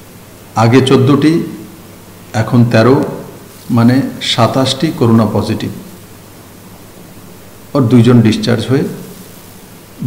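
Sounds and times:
recording hiss: 0.0 - 10.0
man speaking: 0.6 - 1.7, 2.3 - 6.0, 7.7 - 9.2.

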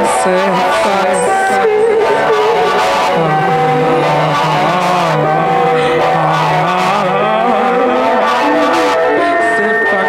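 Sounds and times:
experimental electronic music: 0.0 - 10.0.

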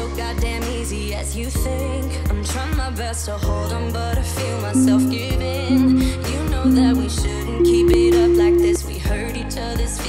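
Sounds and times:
pop music with steady beat: 0.0 - 10.0.

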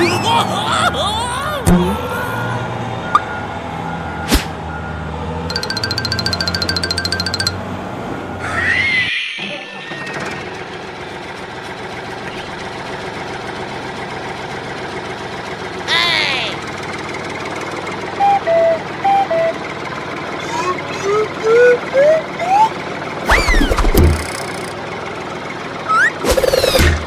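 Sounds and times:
toy engine drone: 5.5 - 7.5
two-tone beeps: 5.5 - 7.6
cartoon sound burst: 21.0 - 24.7.

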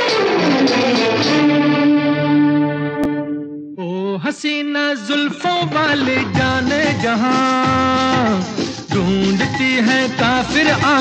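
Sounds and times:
distorted electric guitar: 0.0 - 3.8.

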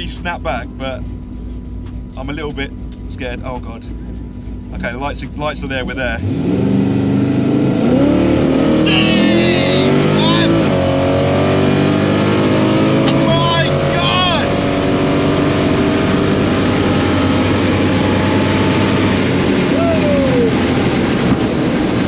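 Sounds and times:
car engine at full throttle: 0.0 - 22.0
thin high whine: 13.3 - 22.0
passengers shouting: 19.6 - 20.8.

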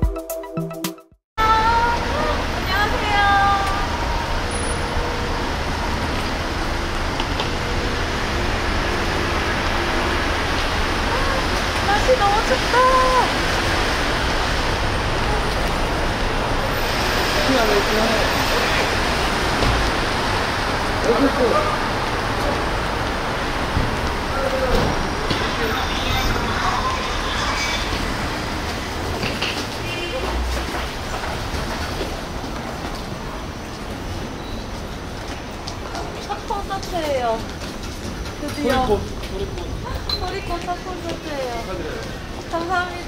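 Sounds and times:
steady traffic noise: 1.4 - 43.0.

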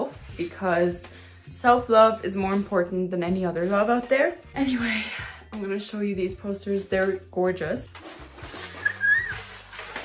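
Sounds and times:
paper rustling: 7.9 - 10.0
high whistle-like squeak: 8.6 - 9.6.

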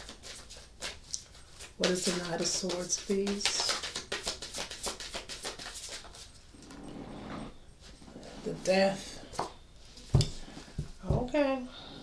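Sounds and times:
cards being shuffled: 0.0 - 6.3.

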